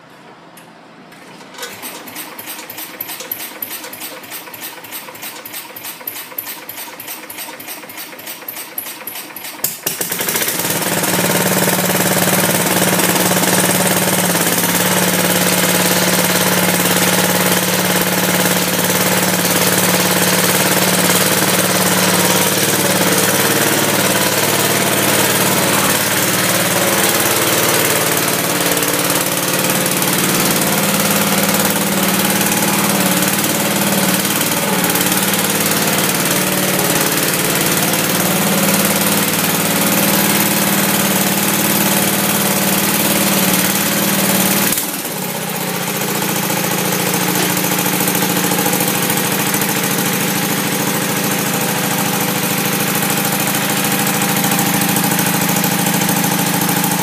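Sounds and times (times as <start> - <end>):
garden tractor engine idling: 1.5 - 57.0.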